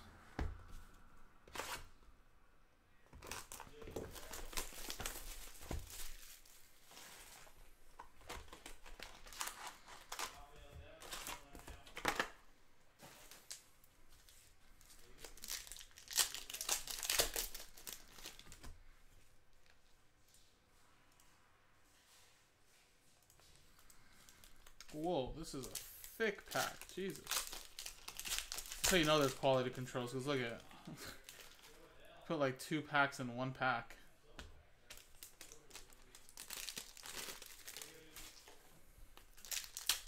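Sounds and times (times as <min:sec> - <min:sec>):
foil packs crinkling: 0:03.2 - 0:12.3, 0:14.8 - 0:18.7, 0:23.8 - 0:31.8, 0:34.9 - 0:38.5, 0:39.2 - 0:40.0
plastic shrink wrap tearing: 0:15.0 - 0:18.6, 0:25.6 - 0:29.6, 0:34.9 - 0:38.5, 0:39.3 - 0:40.0.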